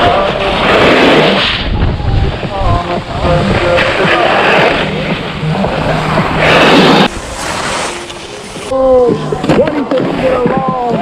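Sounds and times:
wind rumble on microphone: 0:01.1 - 0:07.4
skis scraping over packed snow: 0:03.5 - 0:08.8.

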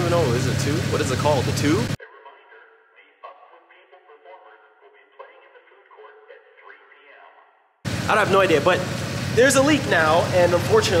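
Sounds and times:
man's voice through small speaker: 0:00.0 - 0:11.0.

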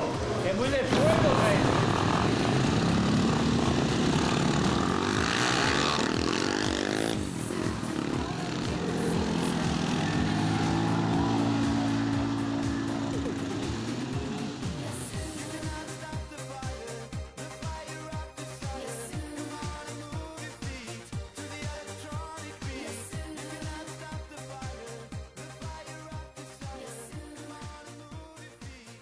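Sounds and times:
quad engines driving past: 0:00.0 - 0:16.0.

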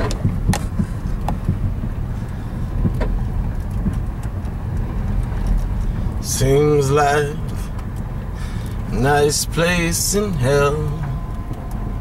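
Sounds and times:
car engine running: 0:00.0 - 0:12.0
road rumble: 0:00.0 - 0:12.0.

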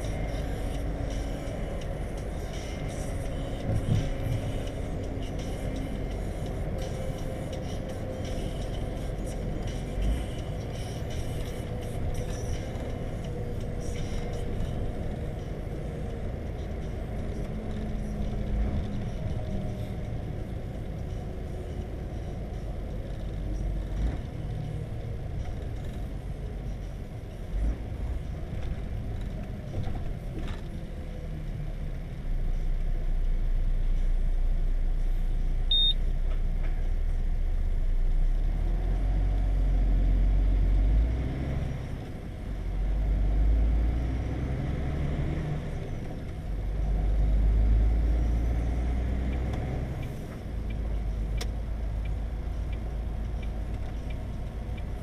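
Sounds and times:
truck engine and road rumble: 0:00.0 - 0:55.0
short high beep: 0:35.7 - 0:36.0.

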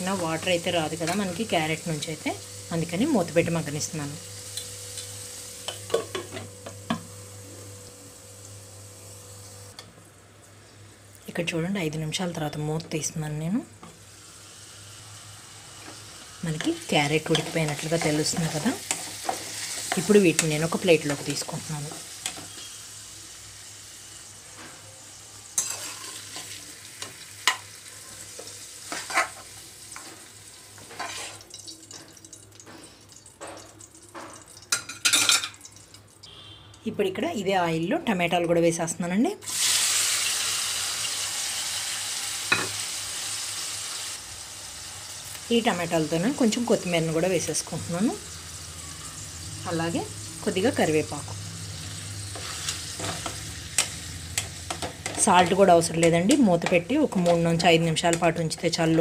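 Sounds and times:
vegetables sizzling in oil: 0:00.0 - 0:09.8, 0:12.3 - 0:38.8, 0:39.4 - 0:59.0.

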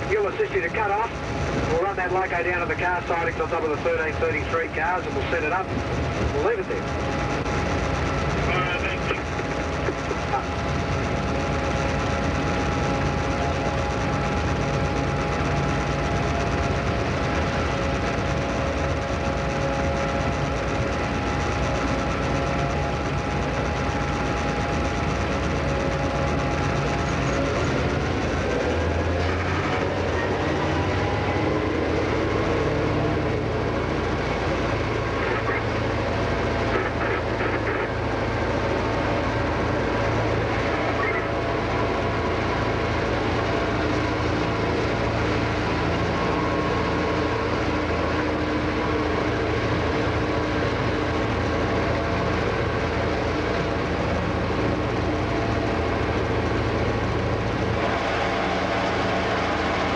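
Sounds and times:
locomotive cab drone: 0:00.0 - 0:59.9.

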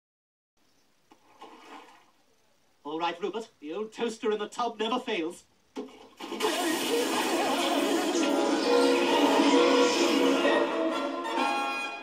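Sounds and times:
bath water sloshing: 0:01.1 - 0:02.2.

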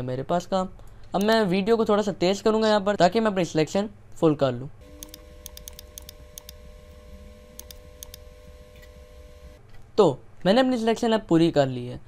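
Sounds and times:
faint steady hum: 0:04.0 - 0:09.9
computer mouse clicks: 0:04.8 - 0:09.6.

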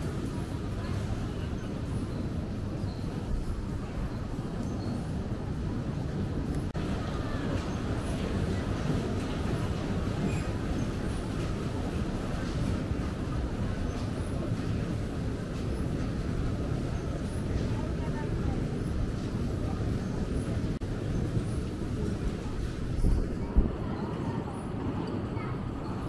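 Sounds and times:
indistinct voices of passers-by: 0:00.0 - 0:26.0.

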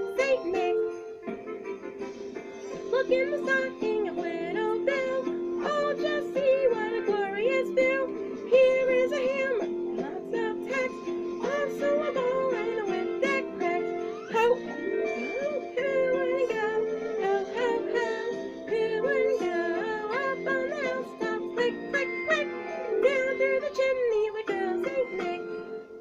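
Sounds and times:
person singing: 0:00.0 - 0:01.1, 0:02.8 - 0:26.0
held accompaniment chords: 0:00.0 - 0:26.0.

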